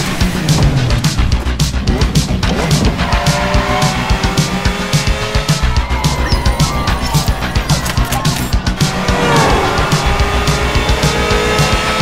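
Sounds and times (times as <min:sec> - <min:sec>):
synth music on a steady beat: 0:00.0 - 0:12.0
sports car engine revving: 0:01.8 - 0:12.0
tyres squealing: 0:02.5 - 0:11.7.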